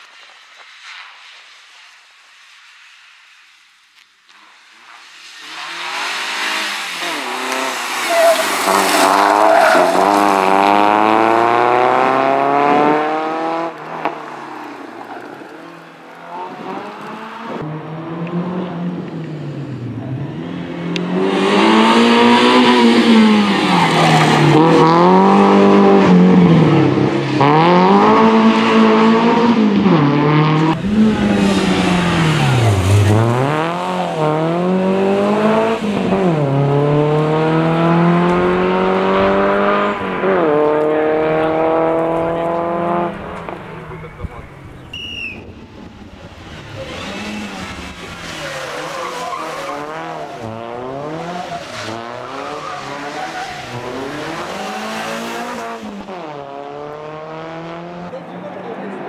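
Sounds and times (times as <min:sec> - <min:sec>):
rally car engine revving: 0:05.4 - 0:44.8, 0:45.5 - 0:59.0.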